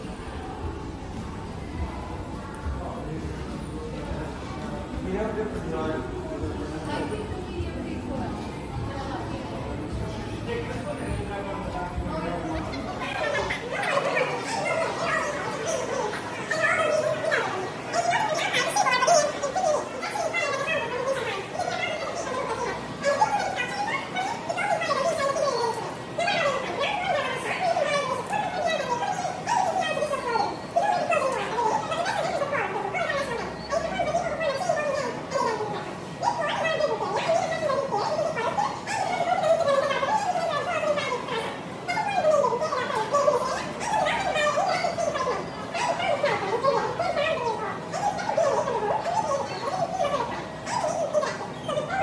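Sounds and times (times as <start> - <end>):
woman's voice through pa speaker: 12.4 - 52.0.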